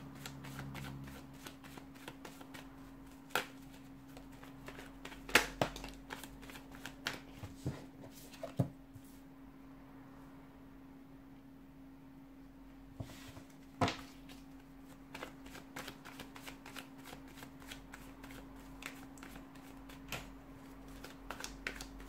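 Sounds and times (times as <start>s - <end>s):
cards being shuffled by hand: 0.0s - 8.7s, 13.2s - 22.0s.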